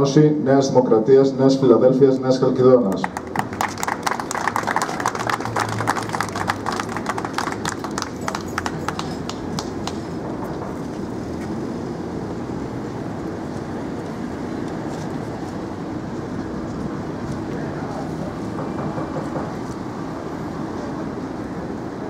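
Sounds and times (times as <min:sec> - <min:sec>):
street traffic hum: 0:00.0 - 0:22.0
onlookers murmuring: 0:02.8 - 0:10.2, 0:16.5 - 0:19.9
crowd applauding: 0:02.9 - 0:10.4.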